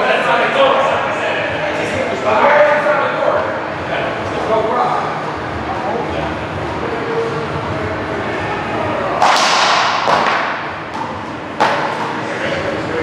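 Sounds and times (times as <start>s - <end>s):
wooden paddle striking ball: 9.2s - 12.1s.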